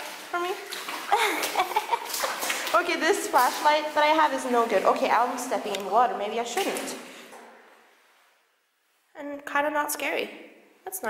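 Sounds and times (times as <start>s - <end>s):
shoes splashing in water: 0.0s - 7.5s.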